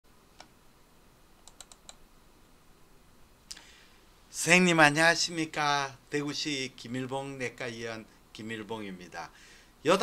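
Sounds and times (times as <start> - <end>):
faint room hiss: 0.1 - 10.0
computer keyboard or mouse clicks: 1.4 - 2.0.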